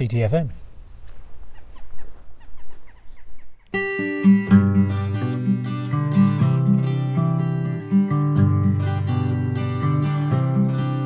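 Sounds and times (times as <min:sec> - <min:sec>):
high-pitched falling animal calls: 0:01.4 - 0:03.7.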